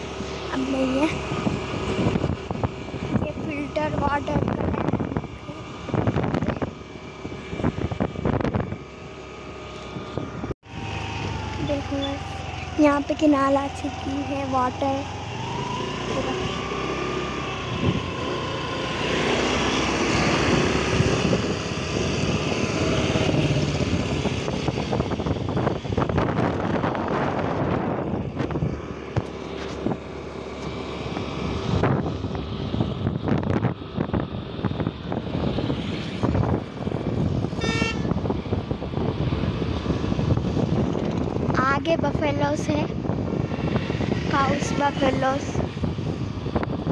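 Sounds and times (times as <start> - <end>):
vehicle engine: 0.0 - 46.9
wind noise: 0.0 - 46.9.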